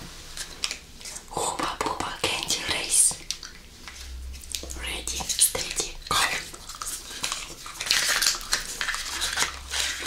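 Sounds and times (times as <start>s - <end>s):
rustling: 6.3s - 10.0s.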